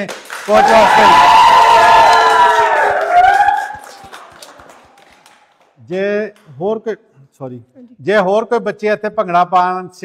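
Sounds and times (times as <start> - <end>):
children cheering and clapping: 0.3 - 5.6.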